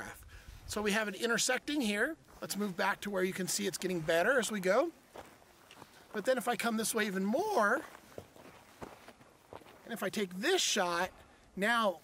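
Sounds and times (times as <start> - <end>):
footsteps on dry dirt: 0.6 - 11.5.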